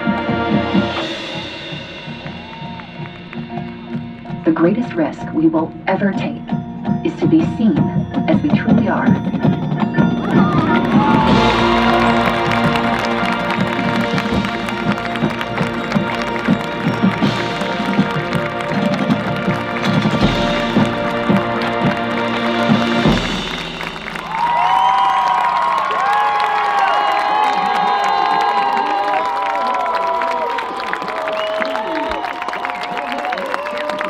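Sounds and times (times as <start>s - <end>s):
crowd cheering and applauding: 0.0s - 4.4s, 10.0s - 34.0s
marching band playing: 0.0s - 6.2s, 7.1s - 34.0s
drum hits: 9.8s - 26.5s.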